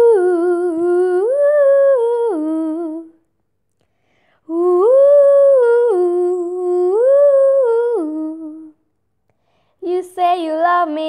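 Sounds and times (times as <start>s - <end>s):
girl singing lyrics: 0.0s - 3.2s, 4.4s - 8.8s, 9.4s - 11.0s
girl singing wordless ooh: 0.0s - 3.3s, 4.4s - 8.9s, 9.5s - 11.0s.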